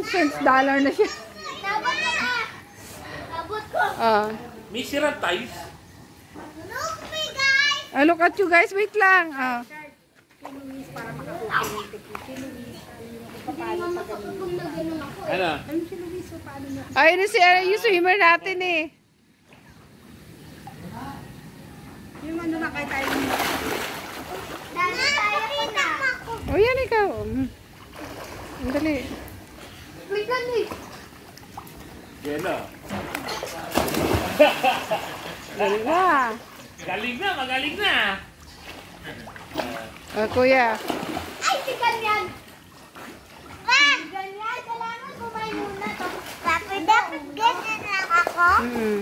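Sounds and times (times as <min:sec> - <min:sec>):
child splashing in a pool: 0:22.8 - 0:26.4, 0:27.7 - 0:32.0, 0:32.9 - 0:36.7, 0:38.6 - 0:49.0.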